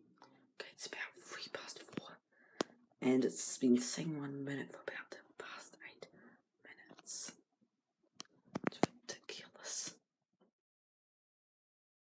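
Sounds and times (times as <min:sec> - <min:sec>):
person whispering: 0:00.6 - 0:02.2, 0:03.0 - 0:07.4, 0:08.6 - 0:10.0.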